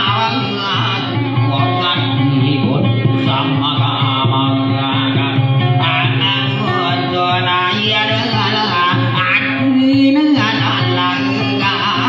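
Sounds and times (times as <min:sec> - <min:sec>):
acoustic guitar folk melody: 0:00.0 - 0:12.0.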